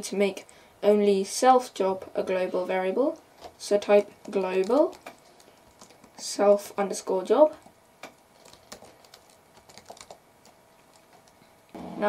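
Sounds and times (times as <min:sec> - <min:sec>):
computer keyboard typing: 0:03.8 - 0:06.2, 0:07.6 - 0:11.4.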